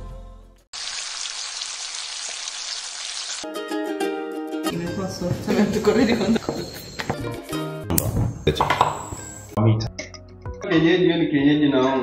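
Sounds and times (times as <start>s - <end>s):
music: 0.0s - 0.7s, 3.4s - 12.0s
food sizzling in a frying pan: 0.8s - 3.4s.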